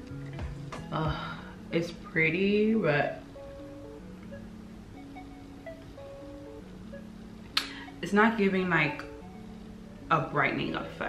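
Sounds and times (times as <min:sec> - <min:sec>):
soft chime-like background music: 0:00.0 - 0:11.0.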